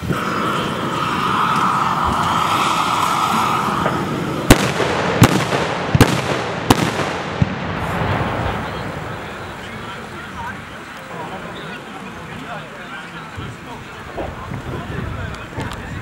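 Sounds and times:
propane torch hissing: 0:00.0 - 0:04.5
carbide cannon bangs: 0:04.5 - 0:07.6.

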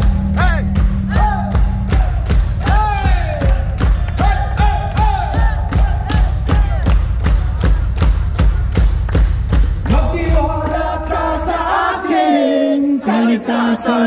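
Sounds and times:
crowd shouting and chanting: 0:00.0 - 0:08.6, 0:09.8 - 0:14.0.

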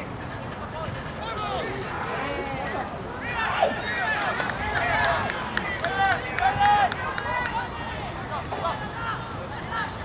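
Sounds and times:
people shouting outdoors: 0:01.2 - 0:10.0.

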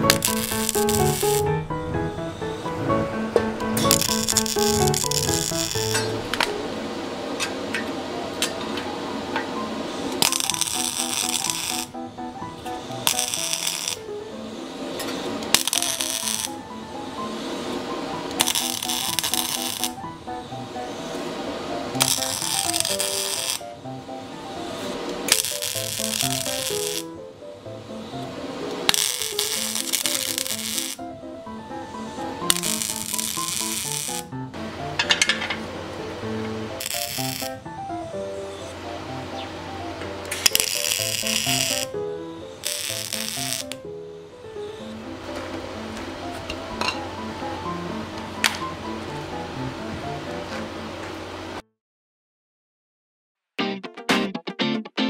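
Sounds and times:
crackling arc welding: 0:00.0 - 0:06.6, 0:09.6 - 0:43.9
background music: 0:00.0 - 0:06.9, 0:08.0 - 0:50.8, 0:53.6 - 0:55.0.

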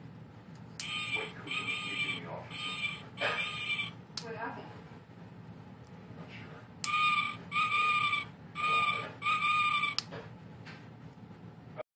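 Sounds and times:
electronic toy hoots: 0:00.8 - 0:04.0, 0:06.9 - 0:10.0.

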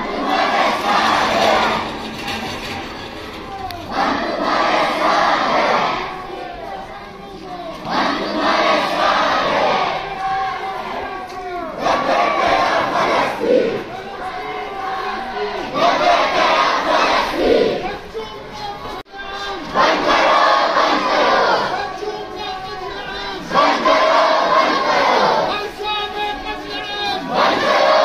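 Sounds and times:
crowd chanting slogans: 0:00.0 - 0:02.5, 0:03.8 - 0:28.0.

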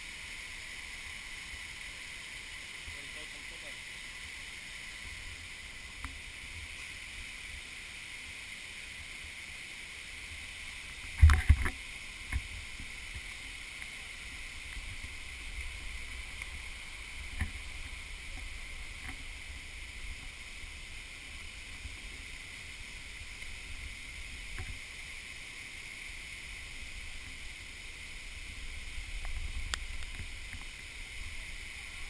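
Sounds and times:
steady high hiss: 0:00.0 - 0:32.0
hand-held camera rumble: 0:26.6 - 0:32.0.

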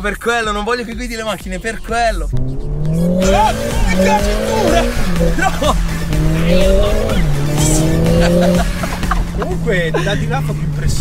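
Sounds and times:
car engine accelerating hard: 0:02.3 - 0:11.0.

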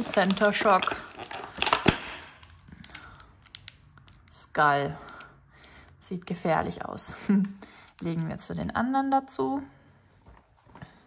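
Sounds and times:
plastic wrapper crinkling: 0:00.0 - 0:04.4.

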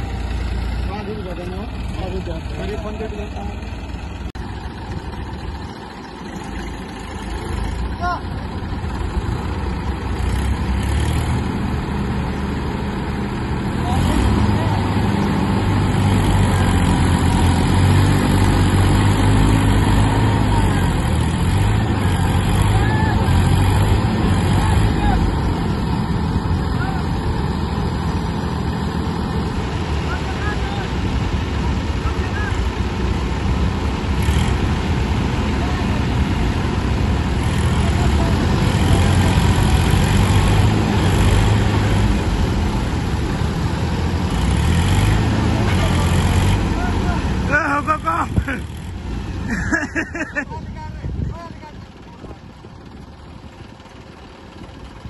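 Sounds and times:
tractor diesel engines under load: 0:00.0 - 0:55.0.

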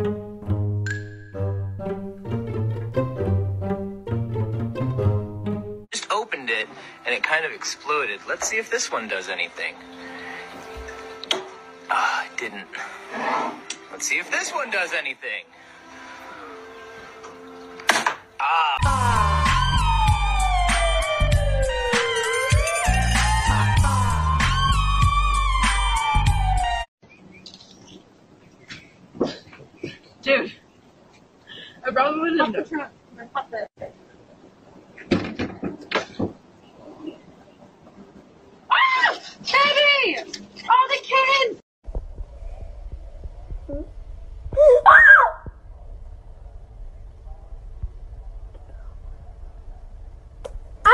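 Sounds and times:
electric appliance humming: 0:15.5 - 0:17.8
low rumble: 0:41.8 - 0:50.9
person crying out: 0:44.6 - 0:45.4.

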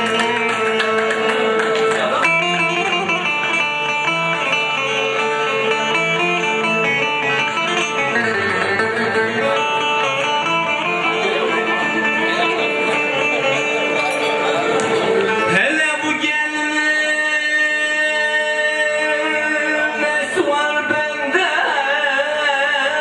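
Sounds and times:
plucked string instrument melody: 0:00.0 - 0:22.4.

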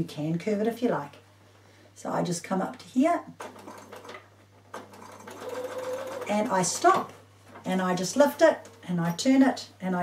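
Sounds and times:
sewing machine stitching: 0:03.4 - 0:07.0.

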